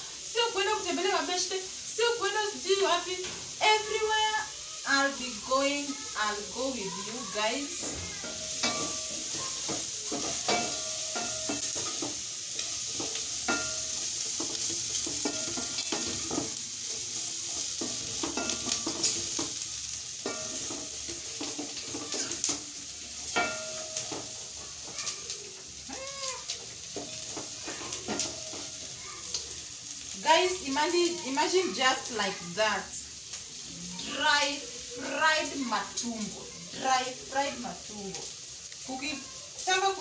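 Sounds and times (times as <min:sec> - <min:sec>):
meat sizzling in a pot: 0:00.0 - 0:40.0.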